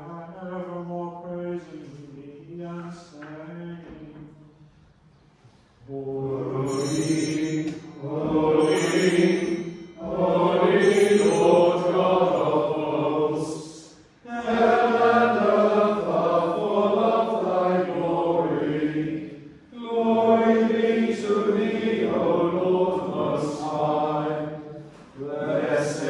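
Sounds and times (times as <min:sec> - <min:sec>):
voices chanting: 0:05.9 - 0:26.0.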